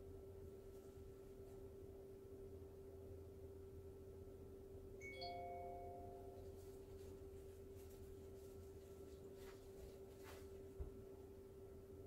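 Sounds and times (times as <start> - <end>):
steady hum: 0.0 - 12.0
faint chime-like ring: 5.0 - 6.8.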